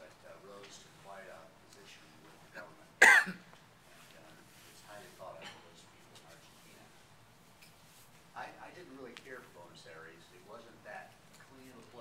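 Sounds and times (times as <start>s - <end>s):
loud cough: 3.0s - 3.4s.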